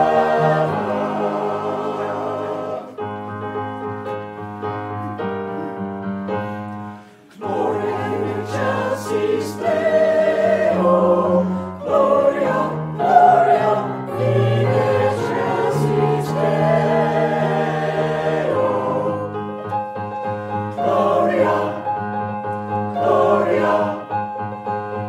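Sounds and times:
choir singing praise song: 0:00.0 - 0:03.0, 0:07.3 - 0:19.4, 0:20.6 - 0:22.0, 0:22.8 - 0:24.3
keyboard chords: 0:00.0 - 0:25.0.

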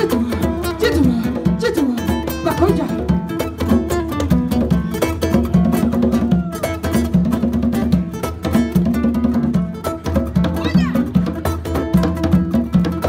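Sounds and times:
acoustic guitar riff: 0:00.0 - 0:13.0
percussion beat: 0:00.0 - 0:13.0.

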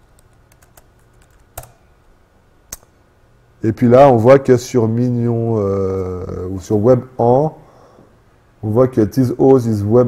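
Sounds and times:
laptop keyboard typing: 0:00.0 - 0:01.8.

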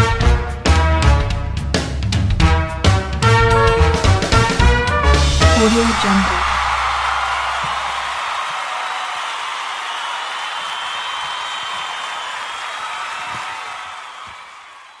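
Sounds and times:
crowd applause and cheering: 0:05.1 - 0:15.0.

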